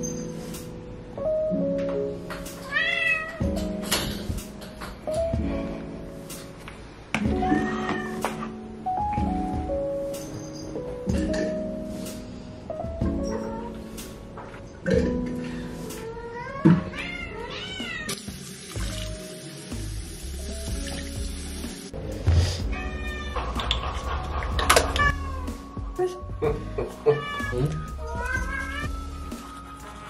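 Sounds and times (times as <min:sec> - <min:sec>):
background music: 0:00.0 - 0:30.0
cat meowing: 0:02.6 - 0:03.4, 0:07.4 - 0:08.4, 0:16.0 - 0:18.1, 0:22.7 - 0:23.5, 0:24.8 - 0:25.6, 0:27.0 - 0:29.0.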